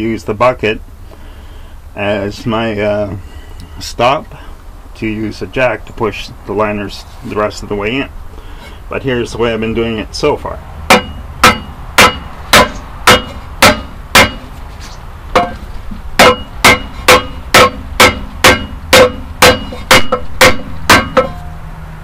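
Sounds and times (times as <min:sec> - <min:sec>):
sledgehammer striking wood on metal: 0:10.9 - 0:14.6, 0:15.3 - 0:21.5.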